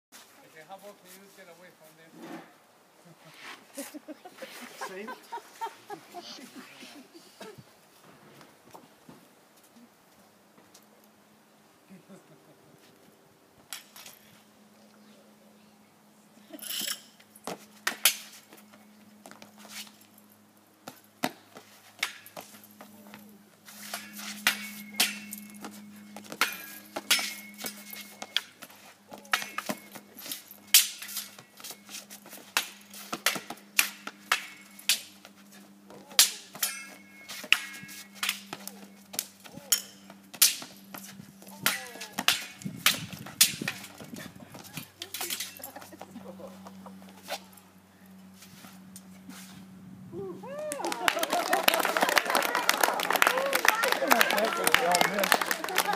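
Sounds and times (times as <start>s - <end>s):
spear and saber striking: 23.8s - 25.7s, 26.3s - 28.5s, 30.7s - 31.3s, 36.1s - 38.6s
metallic ring of saber blade: 23.9s - 28.5s, 34.4s - 35.1s, 36.2s - 38.5s.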